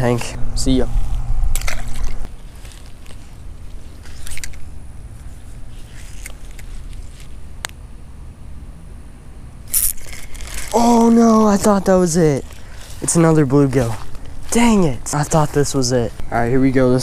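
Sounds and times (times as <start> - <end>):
low rumble: 0.0 - 2.3
rod and reel handling clicks: 4.0 - 4.7, 5.9 - 7.8.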